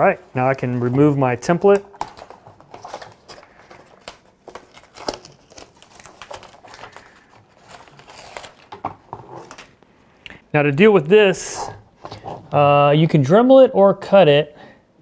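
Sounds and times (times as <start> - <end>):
paper crinkling: 0.0 - 9.9
tape peeling crackles: 1.7 - 8.8.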